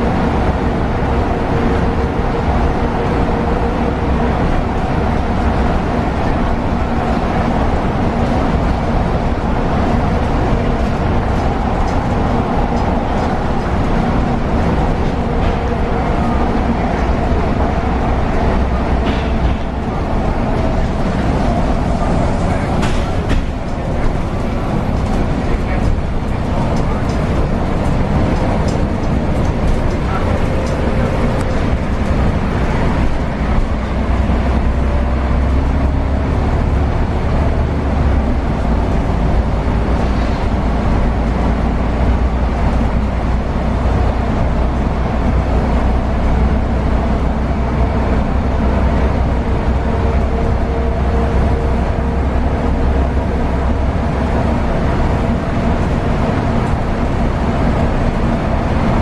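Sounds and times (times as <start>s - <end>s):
bus engine running: 0.0s - 59.0s
road and tyre noise: 0.0s - 59.0s.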